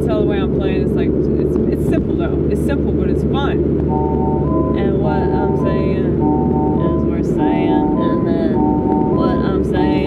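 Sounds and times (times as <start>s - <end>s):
car road and engine rumble: 0.0s - 10.0s
person talking: 4.7s - 6.2s, 6.8s - 8.6s, 9.2s - 10.0s.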